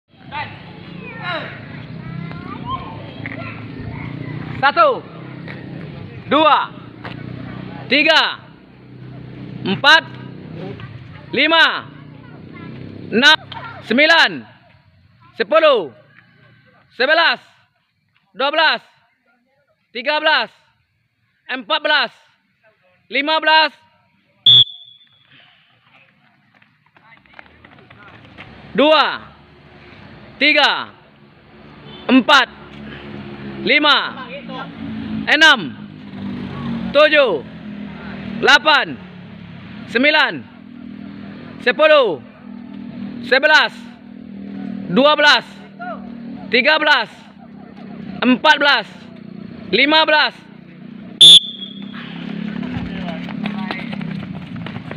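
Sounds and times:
shrill whistle blast: 24.4s - 25.3s, 51.2s - 52.0s.

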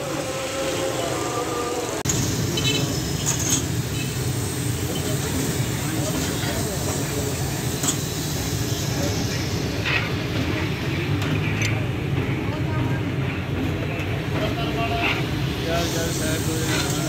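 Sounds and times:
background chatter: 0.0s - 17.0s
low rumble of traffic: 0.0s - 17.0s.

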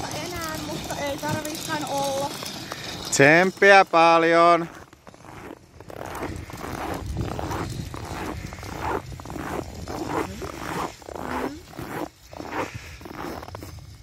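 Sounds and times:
footsteps crunching on snow: 0.0s - 14.0s.

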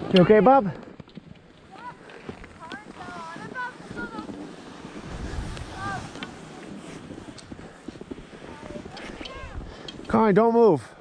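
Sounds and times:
wind rushing over microphone: 2.8s - 10.1s.

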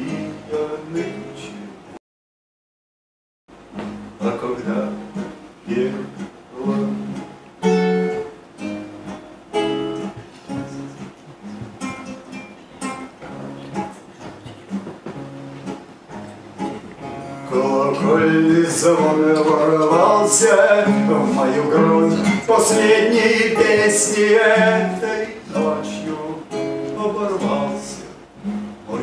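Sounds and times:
acoustic guitar picking: 0.0s - 1.9s, 3.6s - 29.0s.

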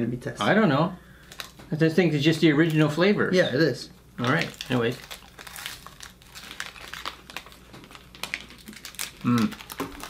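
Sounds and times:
wafer wrapper crinkling: 4.2s - 10.0s.

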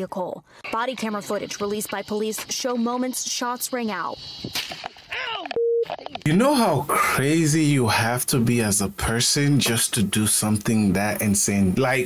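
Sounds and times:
censor bleep: 5.6s - 5.9s
man speaking loudly: 6.3s - 12.0s.

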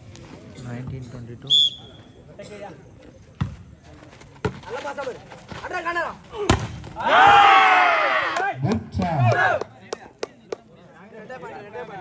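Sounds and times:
players shouting: 5.8s - 9.7s.

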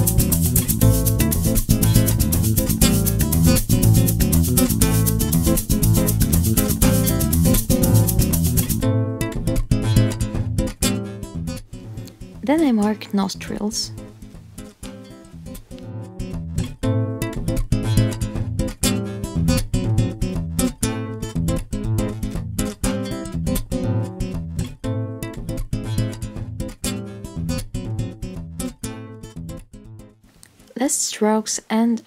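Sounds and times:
acoustic guitar music: 0.0s - 31.6s.

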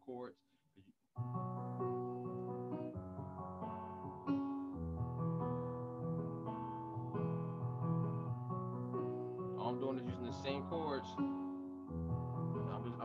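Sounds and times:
electronic keyboard arpeggios: 1.2s - 13.0s.

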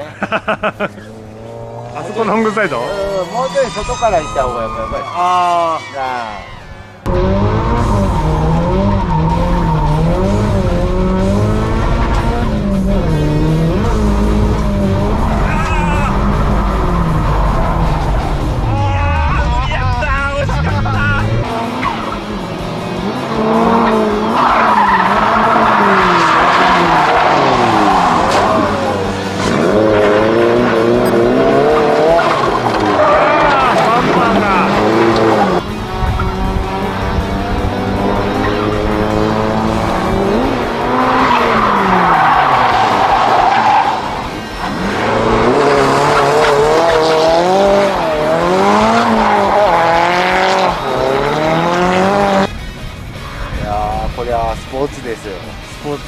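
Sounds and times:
car engine revving: 0.0s - 2.8s, 7.0s - 53.6s
tyres squealing: 2.0s - 6.9s.

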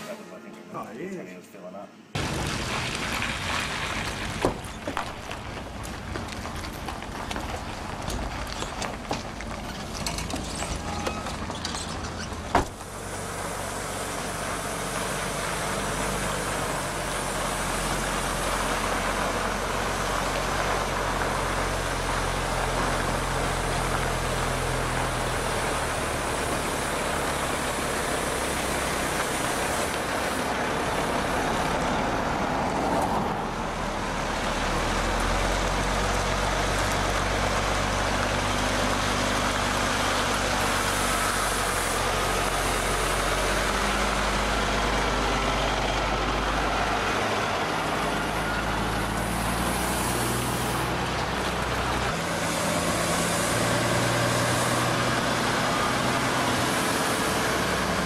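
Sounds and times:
road and tyre noise: 2.1s - 58.0s
truck diesel engine driving by: 2.2s - 58.0s.

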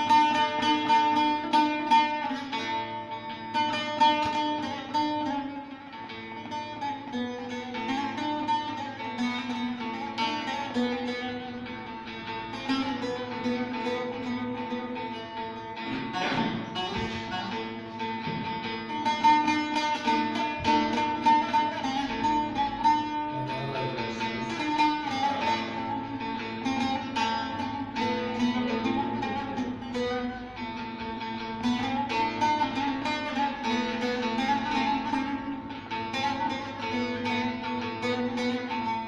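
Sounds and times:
plucked long-necked lute melody: 0.0s - 39.0s.

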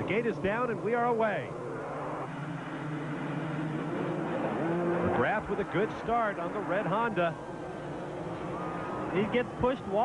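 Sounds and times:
motocross bikes at full throttle: 0.0s - 10.0s.

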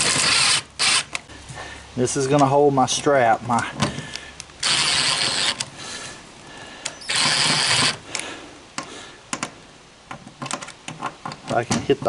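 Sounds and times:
impact driver driving screw: 0.0s - 1.2s, 4.6s - 5.7s, 6.9s - 8.0s.

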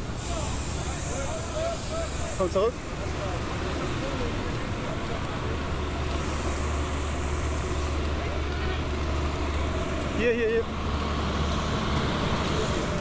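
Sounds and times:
diesel truck engine drone: 0.0s - 13.0s
outdoor noise: 0.0s - 13.0s.

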